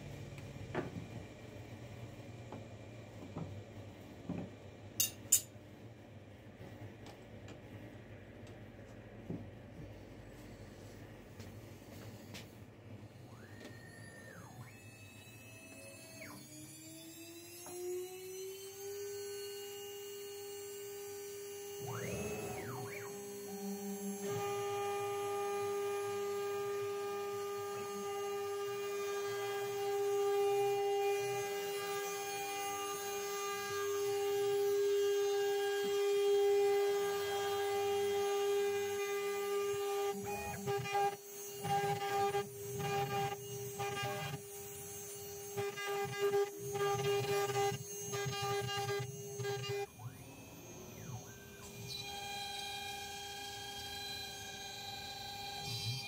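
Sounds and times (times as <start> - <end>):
spindle whine: 12.9 - 34.6, 37.4 - 56.0
router axes whining: 13.2 - 56.0.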